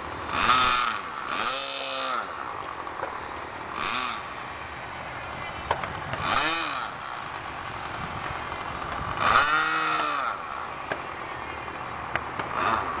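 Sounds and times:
model plane motor whining: 0:00.0 - 0:13.0.

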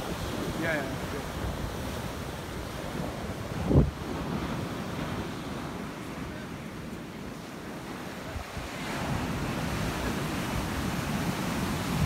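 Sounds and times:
surf washing on a beach: 0:00.0 - 0:12.0
wind buffeting microphone: 0:00.0 - 0:12.0.

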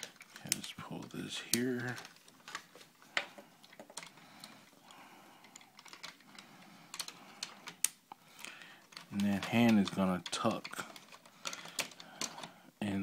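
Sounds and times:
plastic toy clicks and rattles: 0:05.4 - 0:08.0, 0:08.8 - 0:12.5.

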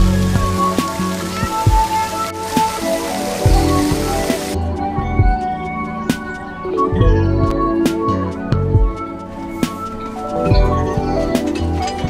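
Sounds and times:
water rushing down fountain: 0:00.0 - 0:04.6
background music with steady beat: 0:00.0 - 0:12.0.

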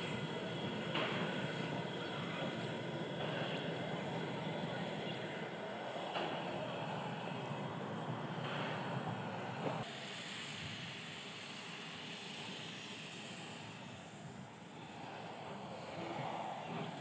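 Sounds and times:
steam engine hissing: 0:00.0 - 0:17.0.

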